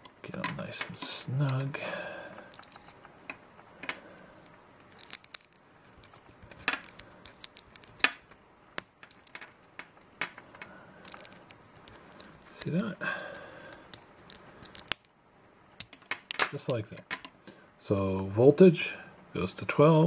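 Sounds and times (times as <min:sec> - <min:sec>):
fingers handling wires: 0:00.0 - 0:01.7, 0:02.4 - 0:15.1.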